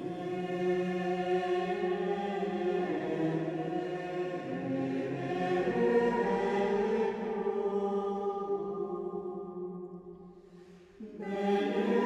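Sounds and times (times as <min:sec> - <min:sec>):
choir singing long notes: 0:00.0 - 0:10.2, 0:11.0 - 0:12.0.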